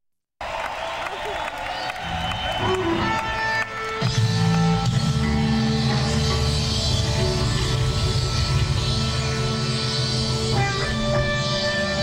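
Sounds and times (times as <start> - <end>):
rock band playing slowly: 2.0 - 12.0.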